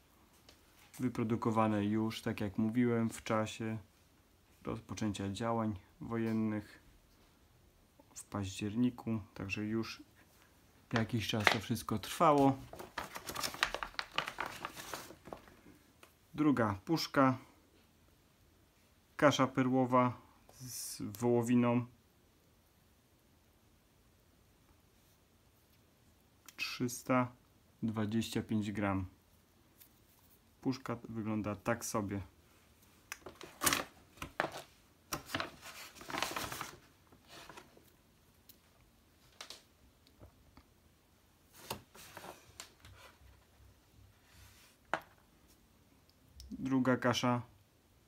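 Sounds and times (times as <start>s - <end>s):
plastic packaging crinkling: 10.9s - 15.7s, 33.2s - 37.9s
plastic wrappers rustling: 10.9s - 15.8s, 33.2s - 37.9s.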